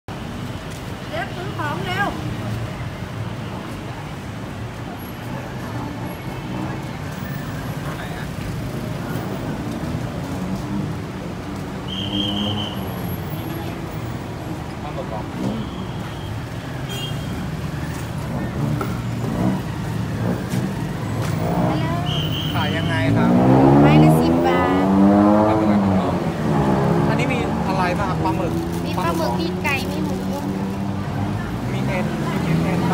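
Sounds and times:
low rumble of engines: 0.1s - 32.9s.

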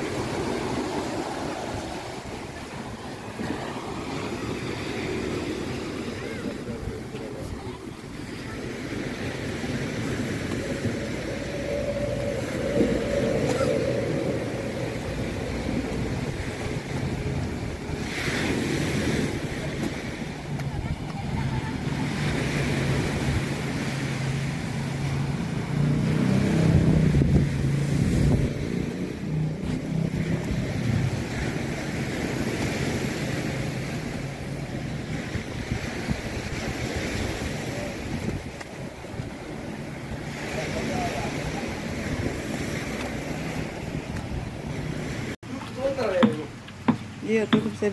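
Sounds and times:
engine hum: 0.0s - 36.4s
wind on microphone: 0.0s - 45.4s
waves breaking on beach: 0.0s - 47.9s.

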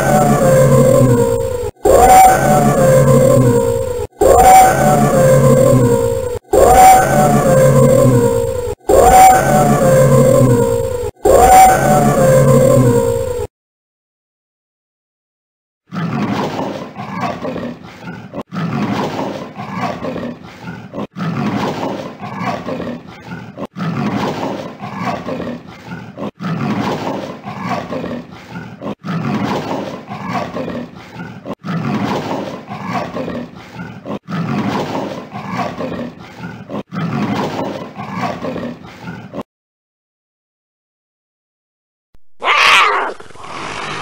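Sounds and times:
leopard call: 42.4s - 43.2s.

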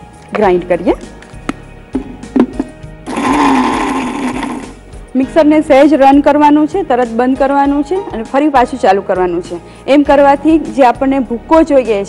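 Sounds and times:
mixer grinder grinding: 3.1s - 4.8s.

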